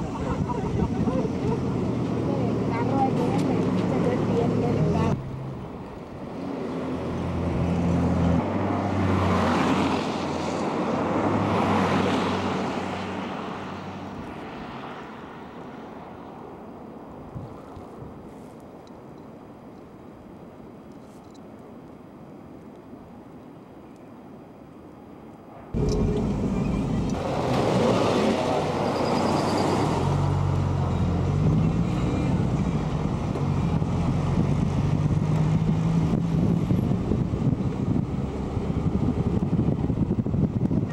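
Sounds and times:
vehicles passing: 0.0s - 18.8s, 25.4s - 40.9s.

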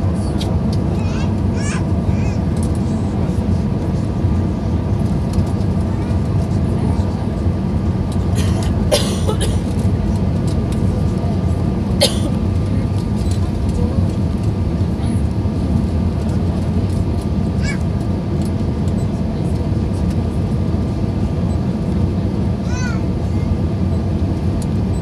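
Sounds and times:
airliner cabin engine noise: 0.0s - 25.0s.

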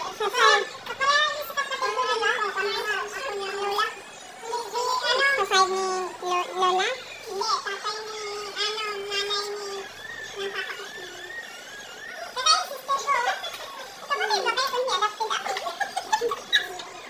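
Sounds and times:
children talking and playing: 0.0s - 17.0s
high child's voice held: 0.0s - 17.0s.

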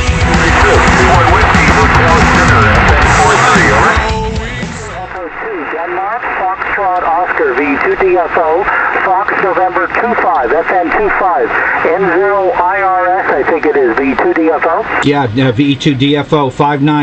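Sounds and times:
steady radio band hiss: 0.0s - 17.0s
narrow tinny radio voice: 0.3s - 4.1s, 4.8s - 15.0s.

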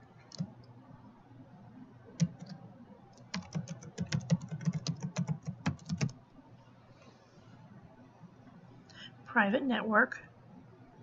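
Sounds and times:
computer keyboard typing: 0.3s - 0.6s, 2.2s - 2.6s, 3.2s - 6.2s.

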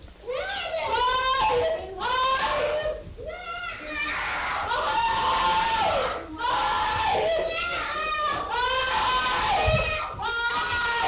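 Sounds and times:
child screaming and wailing: 0.3s - 11.0s.

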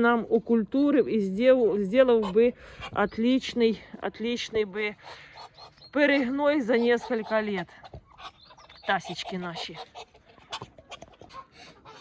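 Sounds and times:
poultry calls: 4.7s - 12.0s.

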